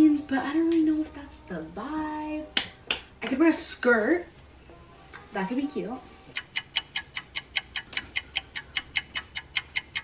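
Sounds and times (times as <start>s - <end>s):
clock ticking fast: 6.4s - 10.0s.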